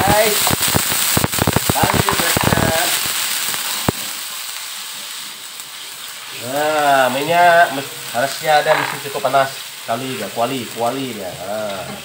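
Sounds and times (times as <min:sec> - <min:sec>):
aromatics sizzling in hot oil: 0:00.0 - 0:12.0.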